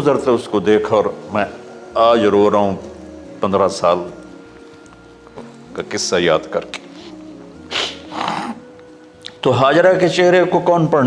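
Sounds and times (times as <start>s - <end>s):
background music drone: 0.0s - 11.0s
man sniffing: 6.9s - 8.7s.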